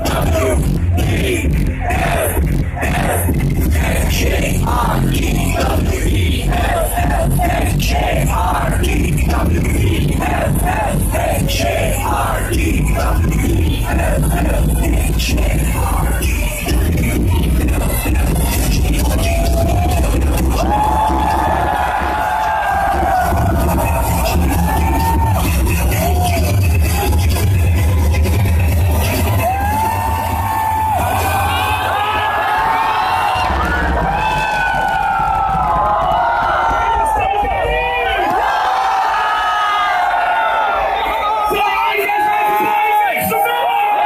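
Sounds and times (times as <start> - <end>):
heavy bass beat: 0.0 - 37.7
crowd shouting and whooping: 0.0 - 44.0
electronic dance music: 0.0 - 44.0.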